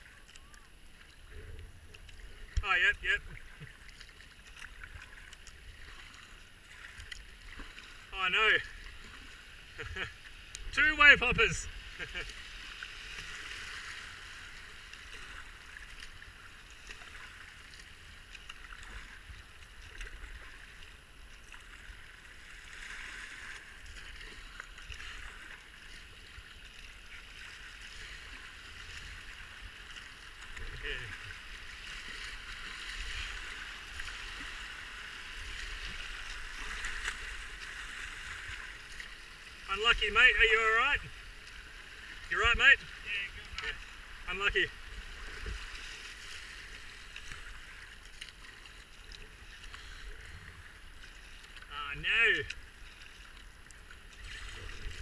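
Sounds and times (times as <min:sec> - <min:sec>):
faint splashes: 0:00.0 - 0:55.0
rushing river water: 0:00.0 - 0:55.0.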